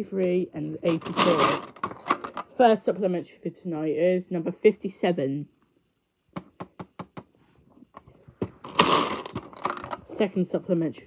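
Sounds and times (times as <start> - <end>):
plastic balls rattling: 0.8 - 2.6, 8.4 - 10.2.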